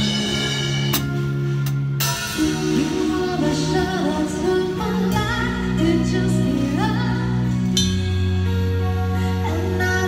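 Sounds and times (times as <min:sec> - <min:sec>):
drum kit hits: 0:00.0 - 0:03.4
keyboard chords: 0:00.0 - 0:10.0
person singing: 0:02.4 - 0:07.8.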